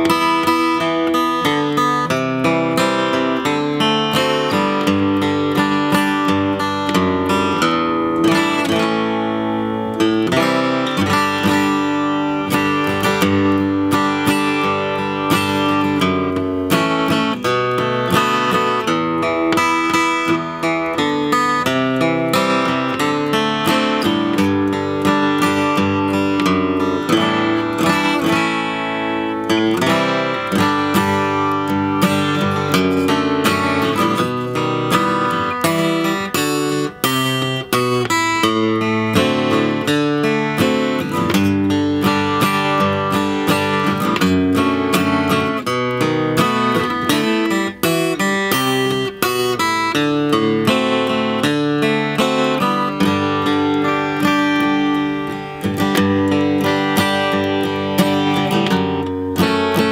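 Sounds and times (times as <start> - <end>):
acoustic guitar strummed chords: 0.0 - 59.9.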